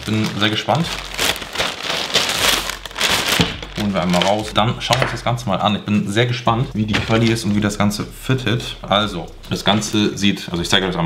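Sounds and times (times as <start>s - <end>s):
plastic bag crinkling: 0.0s - 5.2s, 6.9s - 7.9s.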